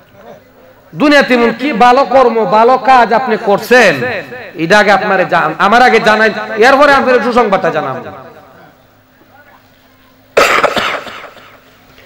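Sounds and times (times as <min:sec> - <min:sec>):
man coughing into a microphone: 0:10.4 - 0:11.7.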